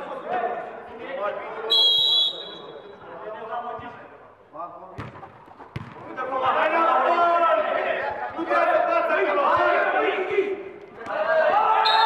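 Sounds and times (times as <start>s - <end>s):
football kick thud: 5.0s - 6.1s
voices shouting: 6.5s - 12.0s.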